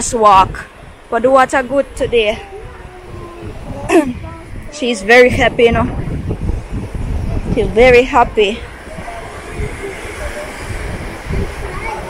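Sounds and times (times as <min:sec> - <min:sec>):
wind buffeting microphone: 0:00.0 - 0:12.0
small waves breaking: 0:00.2 - 0:12.0.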